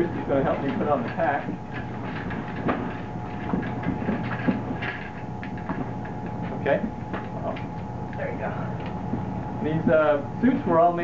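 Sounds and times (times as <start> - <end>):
background hum: 0.0 - 11.0
light knocks and clatters: 0.1 - 7.9.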